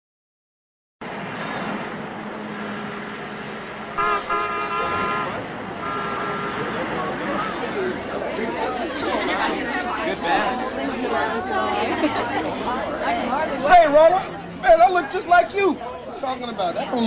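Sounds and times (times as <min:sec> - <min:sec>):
street noise: 0:01.0 - 0:17.0
voices chattering: 0:02.8 - 0:17.0
car horn honking: 0:03.9 - 0:07.5.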